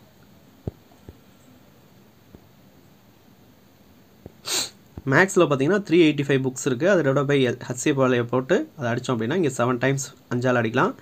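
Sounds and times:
sharp breath close to microphone: 0:04.4 - 0:04.8
speech: 0:05.0 - 0:11.0.

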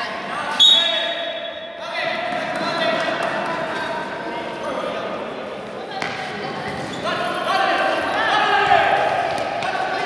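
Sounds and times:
referee's whistle: 0:00.5 - 0:01.8.

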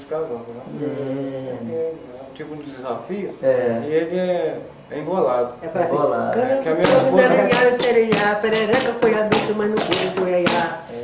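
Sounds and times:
jingling frame drum strikes: 0:06.8 - 0:10.8
man singing: 0:06.8 - 0:11.0.

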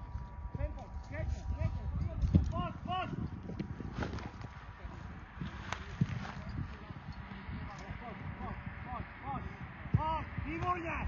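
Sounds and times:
footsteps crunching through dry grass: 0:00.0 - 0:07.9.

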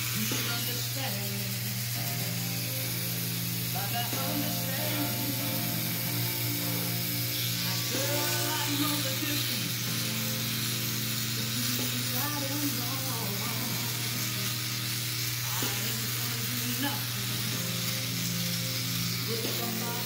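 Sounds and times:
electric beard trimmer buzzing: 0:00.0 - 0:20.0
slow pop song with male vocals: 0:00.0 - 0:20.0.

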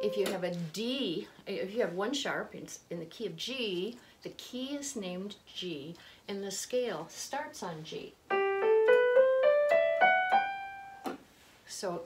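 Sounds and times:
electronic keyboard playing a scale: 0:00.0 - 0:00.2, 0:08.3 - 0:11.0.

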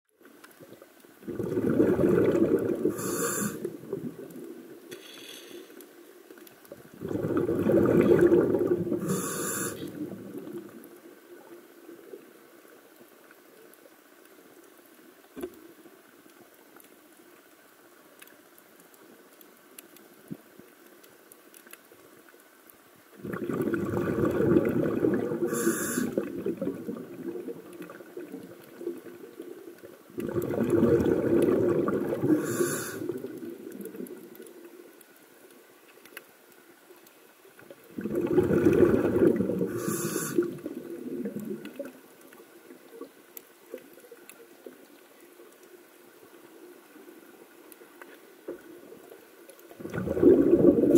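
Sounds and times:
underwater exhaled bubbles: 0:00.2 - 0:05.0, 0:05.7 - 0:13.0, 0:23.1 - 0:35.2, 0:37.5 - 0:45.6, 0:46.2 - 0:50.9.

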